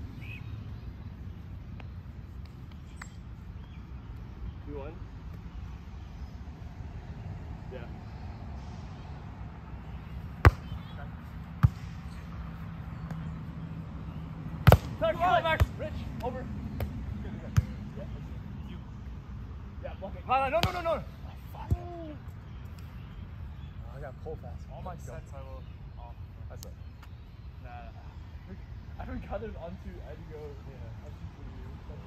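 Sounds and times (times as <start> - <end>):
players shouting: 14.8 - 16.5.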